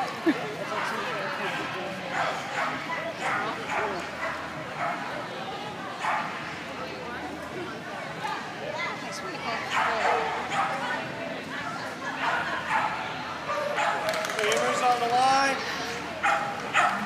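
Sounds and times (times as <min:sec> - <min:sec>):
voices: 0:00.0 - 0:17.0
dog barking and yipping: 0:16.2 - 0:17.0.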